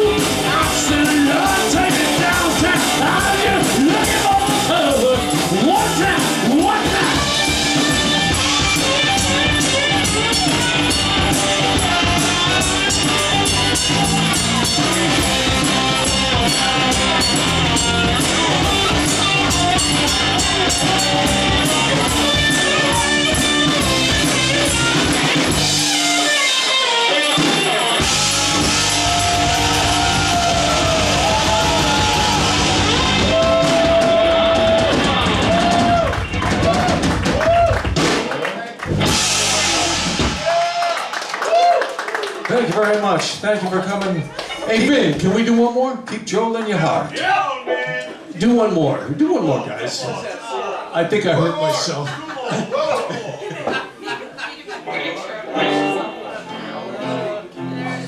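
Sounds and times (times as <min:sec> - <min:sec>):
electric guitars: 0:00.0 - 0:38.2, 0:38.8 - 0:41.5, 0:55.5 - 0:58.0
bass guitar: 0:00.0 - 0:41.7, 0:55.5 - 0:58.0
drum kit: 0:00.0 - 0:41.8
voices in room: 0:42.1 - 0:58.0.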